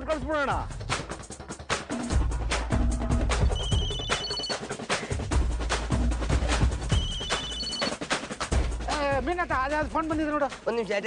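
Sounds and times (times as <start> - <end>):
background music with beat: 0.0 - 10.9
phone ringtone beeps: 3.6 - 4.6, 7.0 - 8.0.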